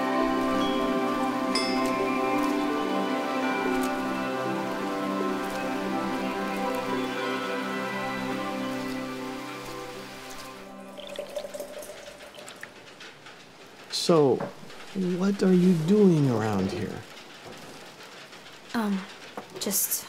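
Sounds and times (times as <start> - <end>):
film score sustained chords: 0.0 - 12.2
heavy rain: 0.0 - 20.0
water dripping: 0.2 - 13.4.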